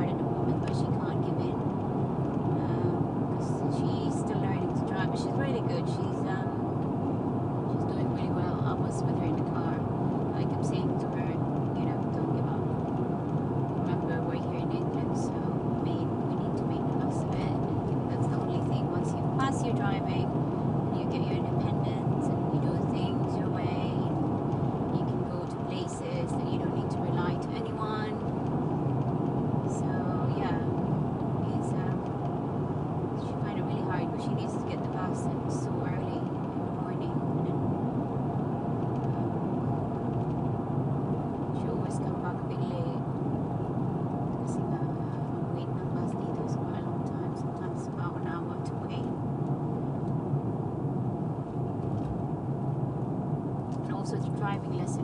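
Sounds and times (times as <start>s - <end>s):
car road and engine noise: 0.0s - 55.0s.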